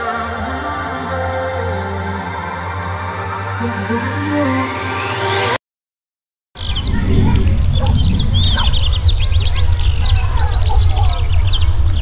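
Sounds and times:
loud low drone: 6.6 - 10.3
small birds chirping: 6.6 - 12.0.

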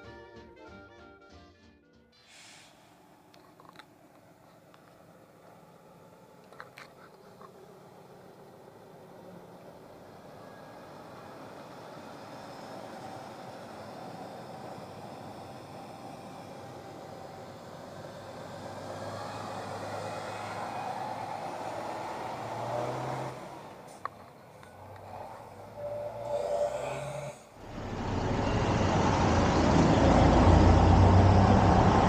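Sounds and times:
heavy trucks driving past: 2.2 - 32.0.

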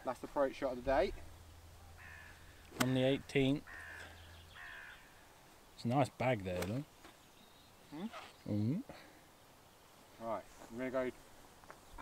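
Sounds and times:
bird calling faintly: 1.2 - 5.9, 6.6 - 10.8
man speaking: 2.7 - 3.7, 5.8 - 6.9, 8.5 - 9.1, 10.2 - 11.2.

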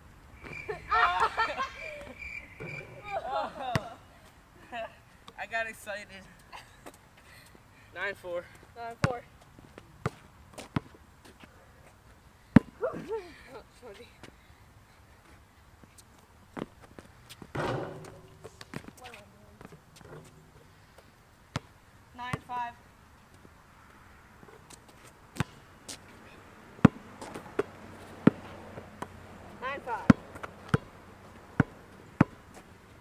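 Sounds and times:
basketball bouncing on asphalt: 0.4 - 0.7, 2.1 - 3.0, 3.6 - 4.0, 8.8 - 11.5, 12.5 - 12.8, 16.6 - 20.6, 21.5 - 22.7, 24.5 - 26.1, 26.7 - 32.8.

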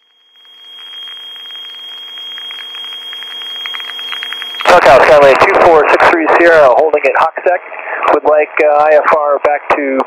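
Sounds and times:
thin high whine: 0.0 - 8.6
aircraft engine drone over radio: 0.3 - 10.0
radio hiss: 0.4 - 10.0.

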